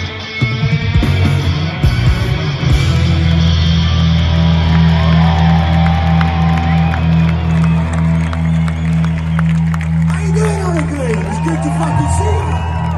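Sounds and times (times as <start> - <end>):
rock band final chord: 0.0 - 6.2
crowd cheering: 1.1 - 12.9.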